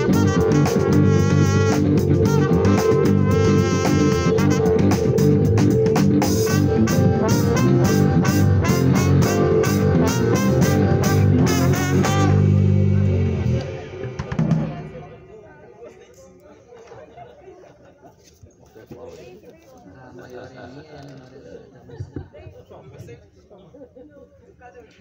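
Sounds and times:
live band playing: 0:00.0 - 0:15.7.

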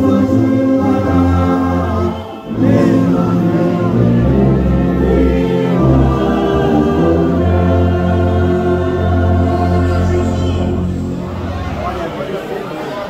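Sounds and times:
congregation singing a hymn: 0:00.0 - 0:12.0
orchestra of strings and brass: 0:00.0 - 0:13.0.

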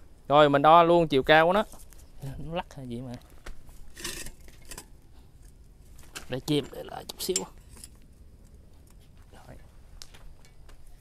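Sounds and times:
metal rasp: 0:03.9 - 0:04.9.

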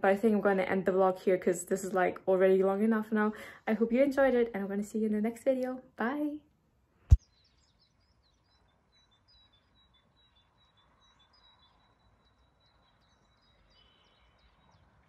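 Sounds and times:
outdoor background noise: 0:00.0 - 0:15.0
faint birdsong chirps: 0:07.2 - 0:15.0.

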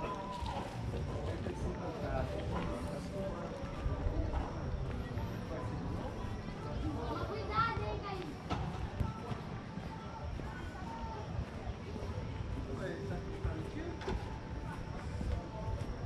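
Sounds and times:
footsteps on paving: 0:00.0 - 0:16.0
people talking indistinctly: 0:00.0 - 0:16.0.

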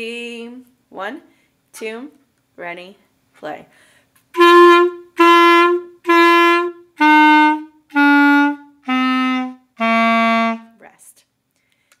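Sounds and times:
clarinet playing slow notes: 0:04.4 - 0:10.7.

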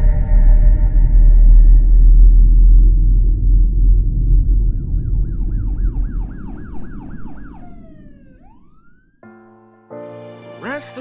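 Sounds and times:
low rumble: 0:00.0 - 0:09.2
siren yelping: 0:04.4 - 0:09.2.

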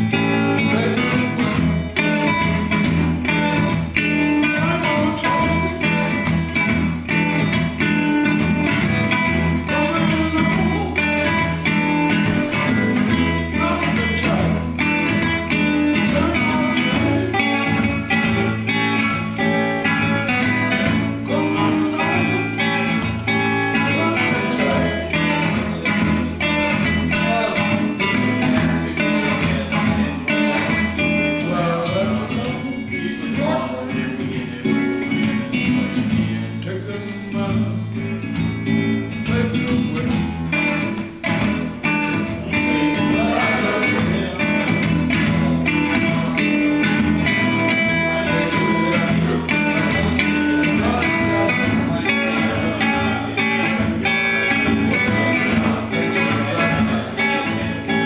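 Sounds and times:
acoustic guitar blues rhythm: 0:00.0 - 0:58.0
man singing: 0:00.0 - 0:58.0.

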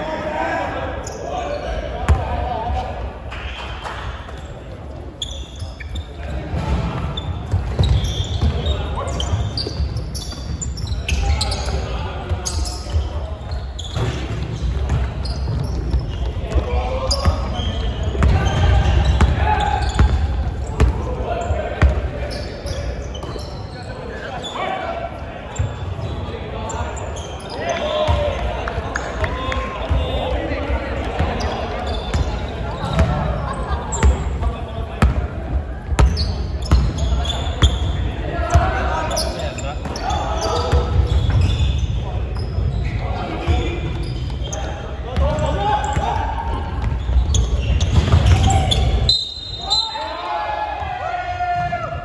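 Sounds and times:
players calling out: 0:00.0 - 0:52.0
sneakers squeaking: 0:00.9 - 0:52.0
basketball bouncing on wood court: 0:06.6 - 0:10.6, 0:18.1 - 0:21.0, 0:32.0 - 0:33.3, 0:36.0 - 0:37.8, 0:45.2 - 0:49.0.

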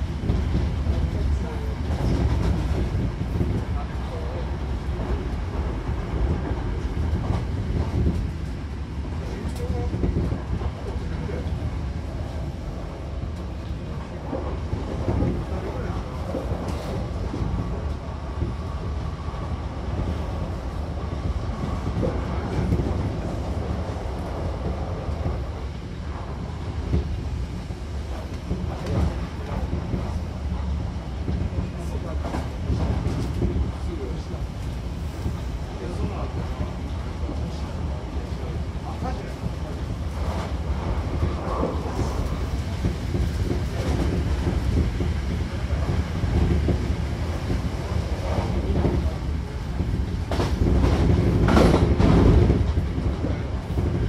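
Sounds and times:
train wheels rumbling on rails: 0:00.0 - 0:54.0.

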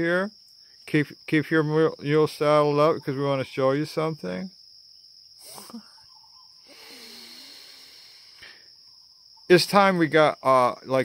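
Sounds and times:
insects chirring: 0:00.0 - 0:11.0
breath through the nose: 0:06.6 - 0:08.7.

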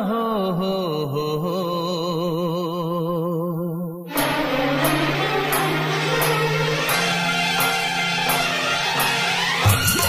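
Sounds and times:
man singing with vibrato: 0:00.0 - 0:05.2.

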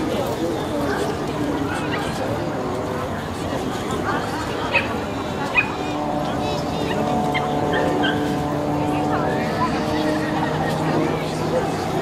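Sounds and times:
background chatter: 0:00.0 - 0:12.0
dog barking: 0:07.7 - 0:08.3.

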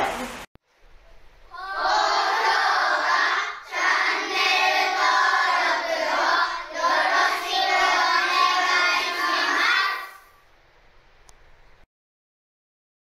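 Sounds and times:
children calling in unison: 0:01.5 - 0:10.3.

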